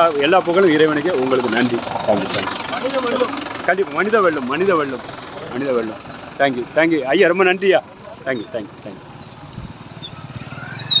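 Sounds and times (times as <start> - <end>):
tractor engine chugging: 0.0 - 11.0.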